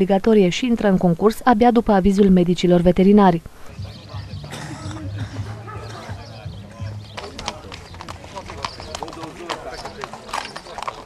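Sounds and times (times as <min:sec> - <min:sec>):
people talking: 0:00.0 - 0:11.0
horse hooves on gravel: 0:05.3 - 0:11.0.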